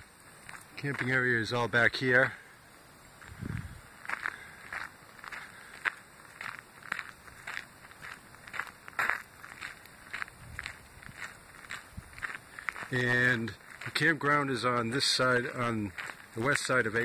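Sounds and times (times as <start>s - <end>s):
footsteps on gravel: 0.3s - 2.4s, 3.1s - 17.0s.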